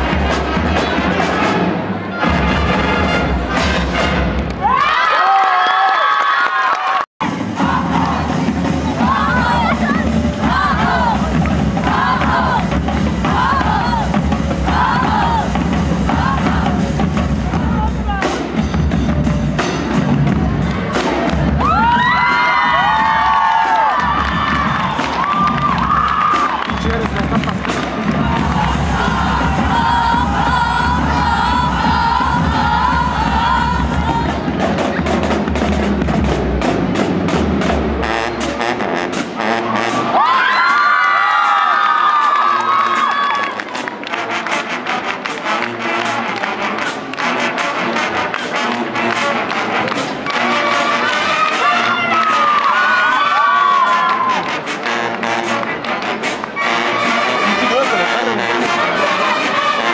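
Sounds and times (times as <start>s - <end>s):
marching band brass and drums: 0.0s - 5.3s, 7.0s - 59.9s
crowd cheering and applauding: 4.0s - 14.1s, 20.4s - 34.3s, 39.6s - 59.9s
crowd shouting: 9.0s - 11.2s, 51.0s - 54.5s.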